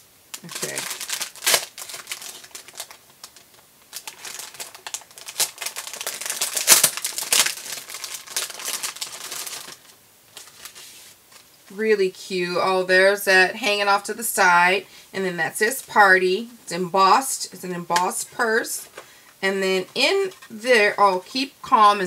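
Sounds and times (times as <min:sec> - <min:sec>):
cellophane crinkling: 0:00.3 - 0:11.7.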